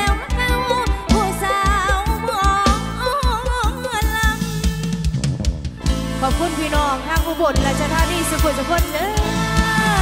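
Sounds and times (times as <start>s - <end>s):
electric band with drum beat: 0.0s - 10.0s.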